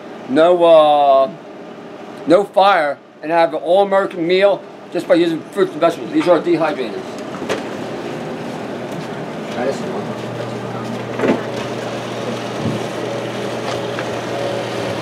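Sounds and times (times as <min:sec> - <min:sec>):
food dehydrator fan running: 0:03.8 - 0:15.0.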